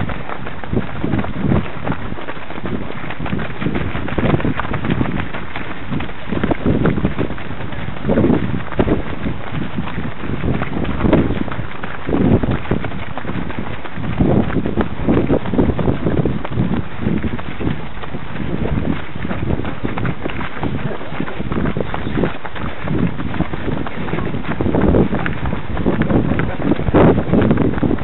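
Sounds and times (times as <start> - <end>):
running footsteps on dirt path: 0.0 - 28.0
wind buffeting microphone: 0.0 - 28.0.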